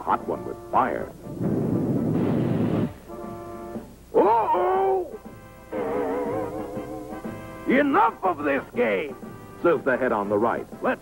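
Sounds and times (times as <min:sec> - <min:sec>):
soft held musical chord: 0:05.7 - 0:08.9.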